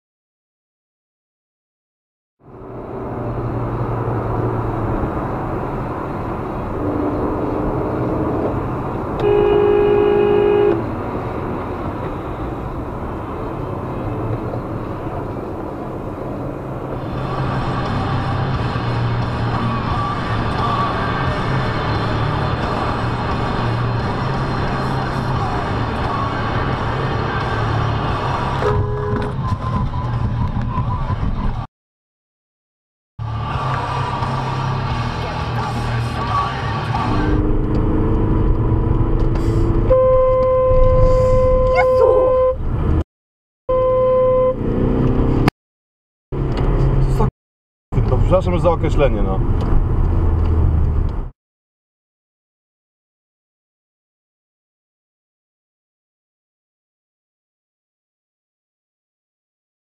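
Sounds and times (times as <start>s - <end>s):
vehicle and road noise: 2.4s - 31.7s, 33.2s - 43.1s, 43.7s - 45.6s, 46.3s - 47.3s, 47.9s - 51.4s
car horn blast: 9.2s - 10.9s, 28.6s - 29.4s, 39.9s - 42.6s, 43.7s - 44.6s.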